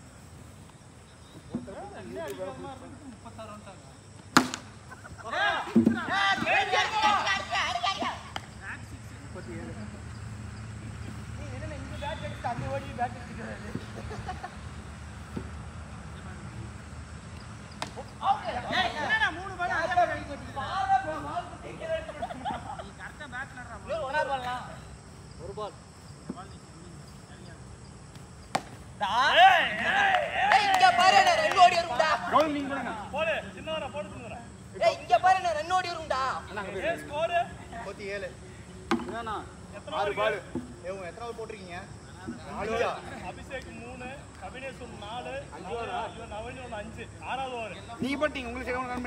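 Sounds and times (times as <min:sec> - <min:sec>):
cricket bat striking ball: 0:04.3 - 0:04.8, 0:17.7 - 0:18.1, 0:28.1 - 0:28.8, 0:38.9 - 0:39.3.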